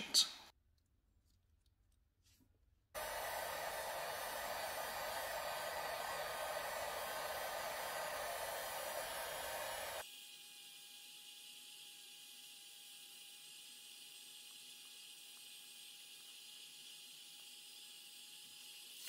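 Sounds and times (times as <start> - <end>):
faint steady whine: 3.0 - 10.0
heat gun blowing air: 3.0 - 10.1.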